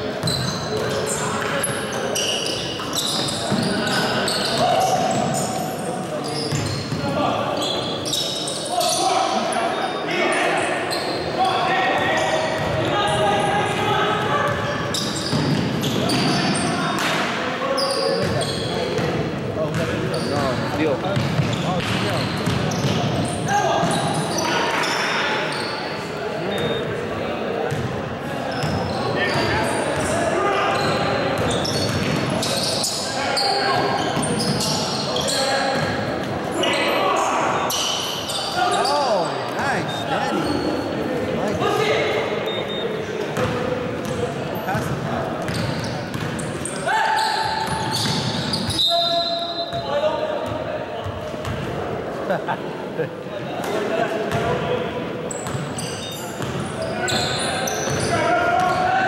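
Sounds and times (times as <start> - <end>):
sneakers squeaking: 0.0 - 52.4, 53.5 - 59.0
voices echoing: 0.0 - 59.0.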